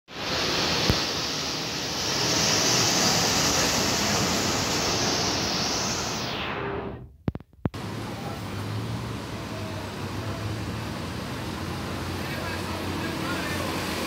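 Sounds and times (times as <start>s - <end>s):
loud rushing noise: 0.1s - 14.0s
sharp clicks: 7.2s - 7.8s.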